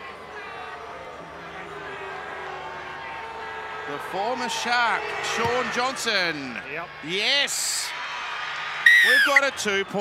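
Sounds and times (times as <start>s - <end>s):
stadium crowd murmur: 0.0s - 10.0s.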